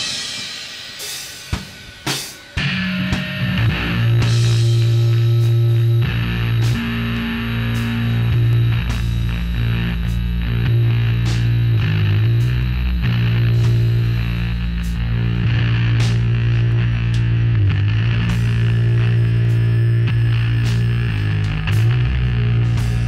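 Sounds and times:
amplified low doom drone: 0:02.6 - 0:23.0.

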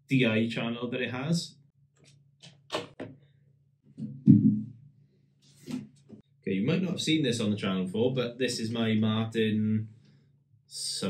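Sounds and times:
faint low hum: 0:06.5 - 0:11.0.

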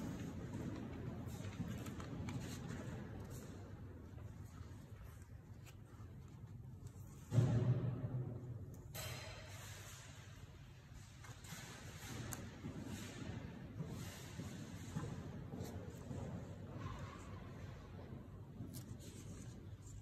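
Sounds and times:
paper pages rustling: 0:00.1 - 0:07.2, 0:18.6 - 0:20.0.

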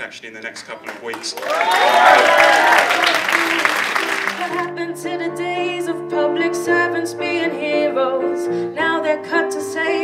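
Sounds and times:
audience applauding and cheering: 0:00.8 - 0:04.7
whoops: 0:01.4 - 0:04.0.

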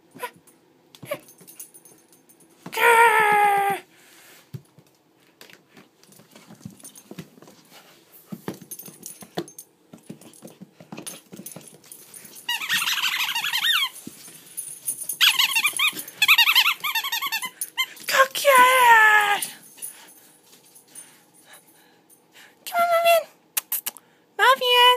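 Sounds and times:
dog squealing: 0:12.5 - 0:14.0, 0:15.2 - 0:17.9.

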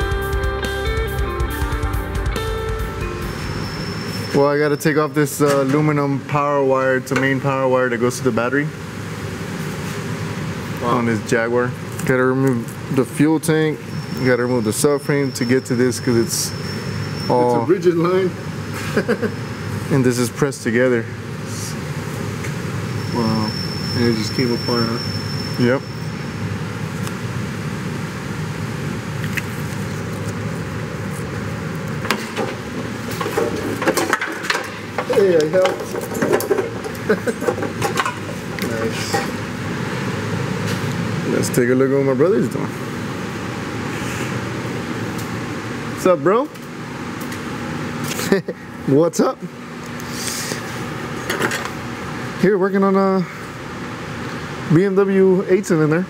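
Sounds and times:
auto repair shop background noise: 0:00.0 - 0:56.0.

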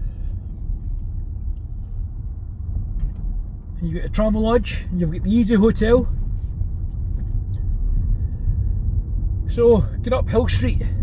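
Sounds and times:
car engine inside cabin: 0:00.0 - 0:11.0
tyre noise on road: 0:00.0 - 0:11.0.

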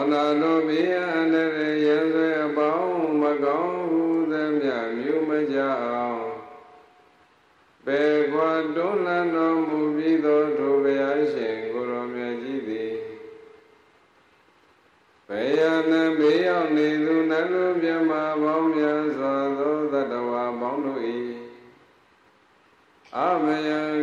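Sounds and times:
man chanting into a microphone: 0:00.0 - 0:06.9, 0:07.8 - 0:13.6, 0:15.3 - 0:21.8, 0:23.1 - 0:24.0.

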